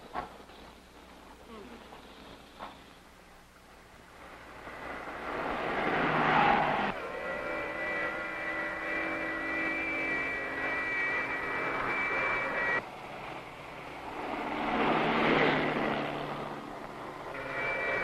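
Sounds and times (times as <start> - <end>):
whoosh of passing car: 4.6 - 7.0.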